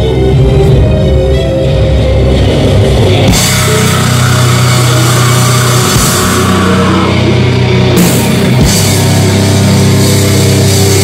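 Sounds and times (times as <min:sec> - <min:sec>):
metal band playing loud: 0:00.0 - 0:11.0.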